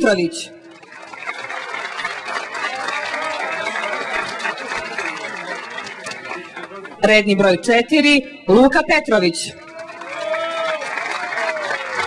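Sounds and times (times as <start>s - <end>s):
crowd applauding: 0.6s - 7.3s, 9.5s - 12.0s.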